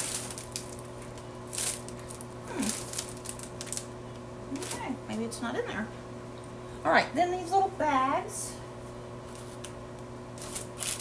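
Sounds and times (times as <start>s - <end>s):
packaging rustling and crinkling: 0.0s - 3.9s, 10.4s - 11.0s.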